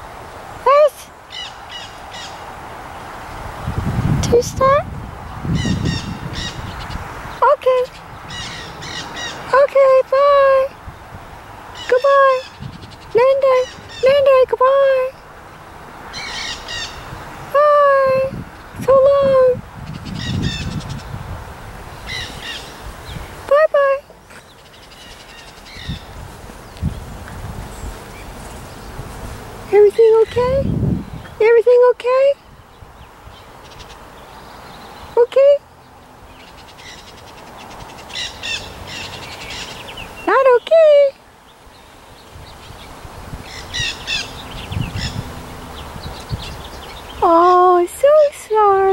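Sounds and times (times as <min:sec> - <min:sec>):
parakeets calling: 0:01.2 - 0:02.5, 0:05.5 - 0:10.8, 0:11.7 - 0:17.9, 0:18.5 - 0:21.2, 0:22.0 - 0:27.0, 0:29.6 - 0:31.4, 0:32.3 - 0:48.9
loud parakeet calls: 0:01.3 - 0:02.4, 0:05.6 - 0:07.0, 0:08.3 - 0:09.6, 0:16.1 - 0:17.2, 0:19.9 - 0:21.1, 0:22.1 - 0:23.2, 0:36.4 - 0:40.3, 0:43.4 - 0:47.2
parakeets chattering: 0:16.1 - 0:17.2, 0:36.3 - 0:41.1, 0:43.4 - 0:47.6.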